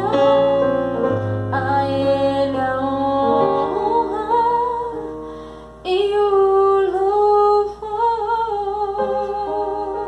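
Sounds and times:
digital piano: 0.0s - 10.0s.

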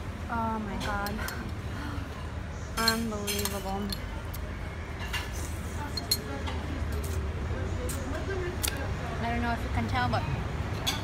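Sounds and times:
rumble of buses and traffic: 0.0s - 11.0s.

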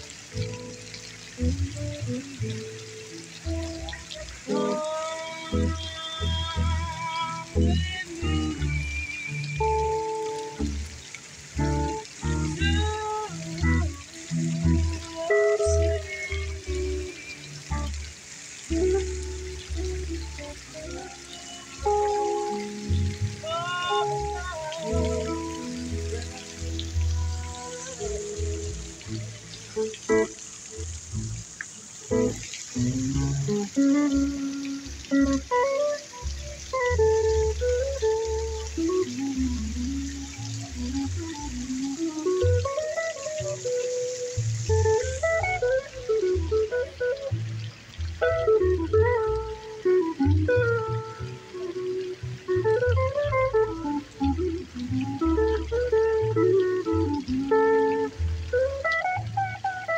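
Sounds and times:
electric guitar melody: 0.0s - 59.9s
plucked double bass: 0.0s - 59.9s.

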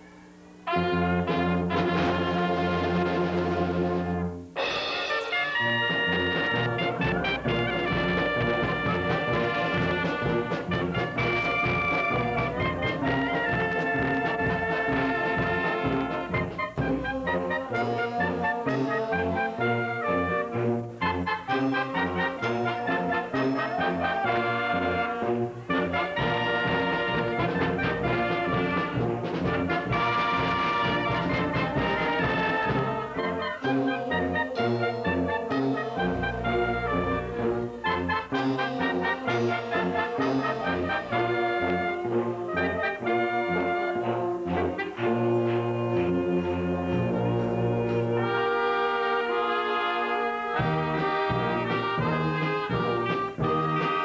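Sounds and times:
brass and woodwind band playing: 0.0s - 54.0s
walking bass line: 5.8s - 20.2s.

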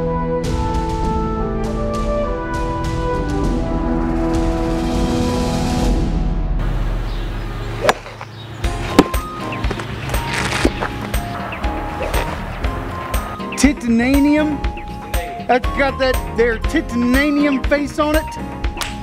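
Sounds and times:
brass-led orchestral music: 0.0s - 6.8s, 10.2s - 19.0s
golf club striking ball: 7.8s - 11.0s.

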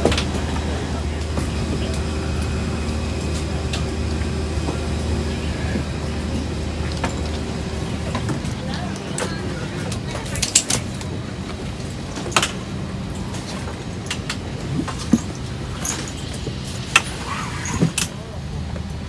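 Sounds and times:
indistinct passenger chatter: 0.0s - 19.0s
low cabin hum: 0.0s - 19.0s.

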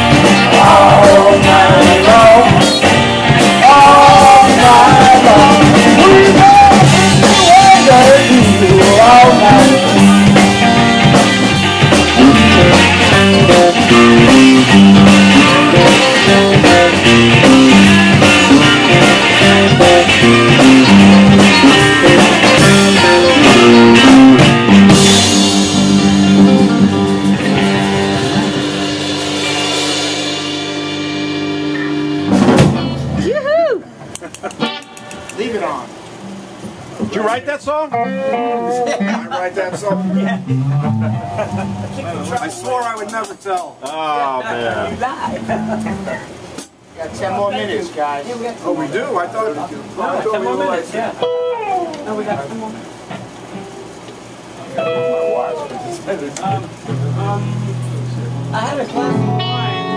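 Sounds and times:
final band hit: 0.0s - 33.4s
live blues-rock band playing: 0.0s - 46.9s, 50.5s - 59.9s
person singing: 0.3s - 2.8s, 3.4s - 10.5s.

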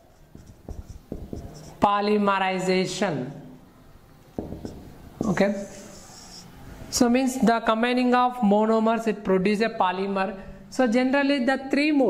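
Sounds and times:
marker pen writing on whiteboard: 0.0s - 2.2s, 4.3s - 6.6s.

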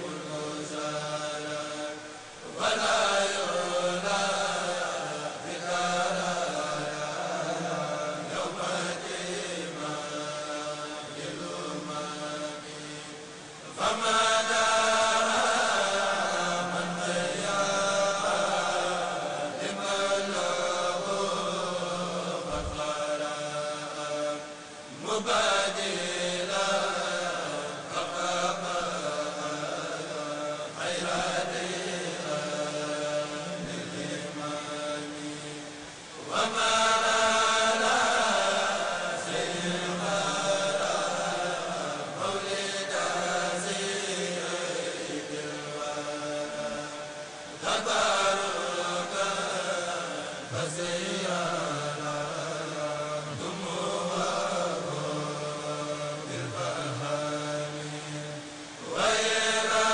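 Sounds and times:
men chanting in unison: 0.0s - 59.9s.

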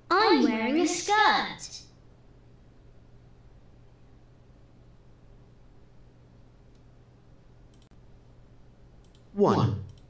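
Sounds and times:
steady low hum: 0.0s - 10.0s
computer mouse clicks: 7.7s - 8.0s, 9.0s - 10.0s.

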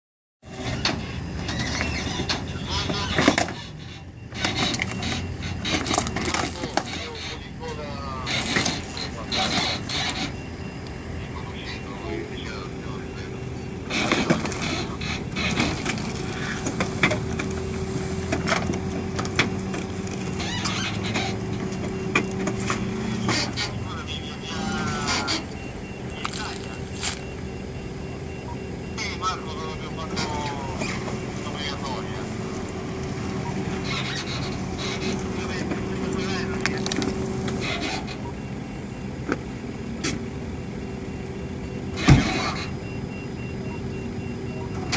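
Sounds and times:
tow truck winch and engine: 0.4s - 44.9s
voices talking in background: 1.8s - 17.5s, 18.7s - 38.8s.

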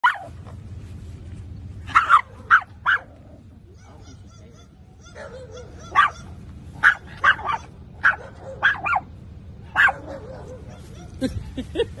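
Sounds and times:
small dog yapping: 3.8s - 9.1s.

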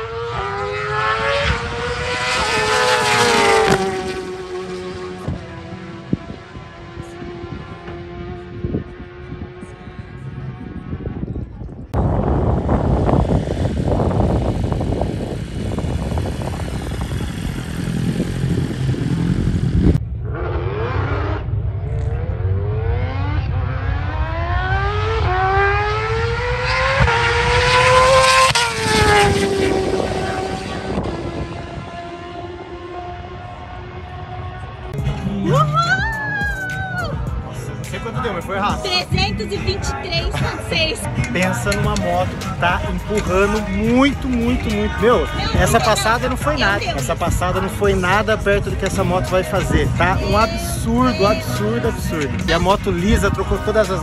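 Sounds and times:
motorcycle accelerating past: 0.0s - 11.2s, 12.2s - 35.9s
rough engine rumble: 1.4s - 54.0s.

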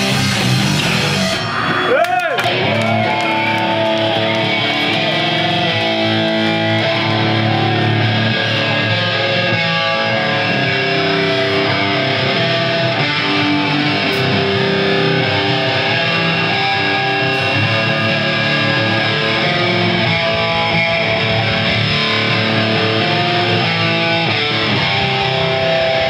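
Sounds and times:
bass guitar: 0.0s - 26.0s
distorted electric guitar chords: 0.0s - 26.0s
drums: 0.0s - 26.0s.

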